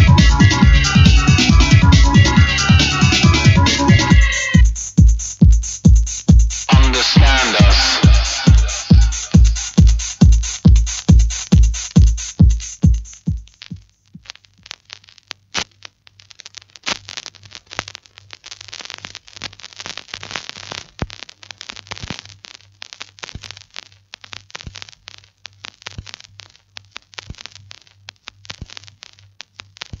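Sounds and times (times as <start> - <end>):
vinyl record crackle and pops: 0.0 - 30.0.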